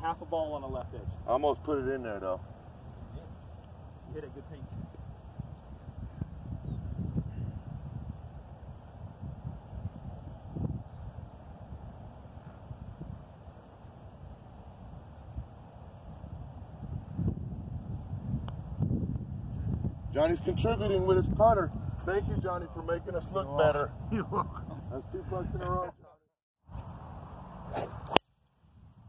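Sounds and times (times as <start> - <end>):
wind buffeting microphone: 0.0 - 26.1.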